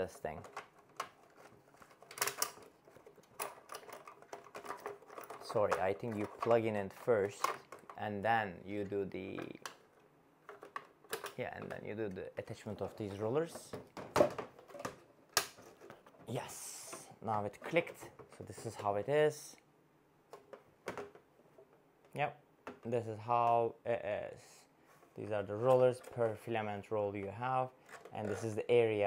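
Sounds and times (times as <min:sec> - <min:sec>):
hard plastic clicking and rattling: 0:00.4 - 0:08.0, 0:09.4 - 0:11.8, 0:20.3 - 0:22.9
hard plastic parts knocking: 0:13.5 - 0:16.2, 0:20.3 - 0:21.7.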